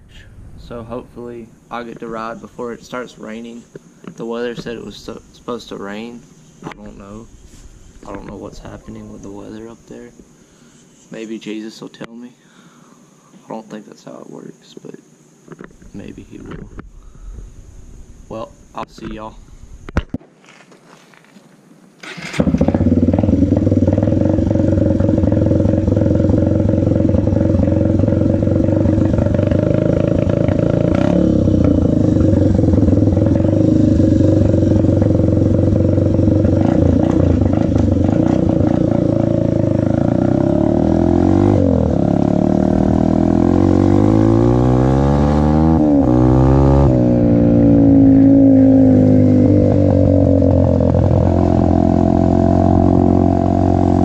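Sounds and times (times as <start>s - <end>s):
dirt bike engine revving: 22.0s - 54.0s.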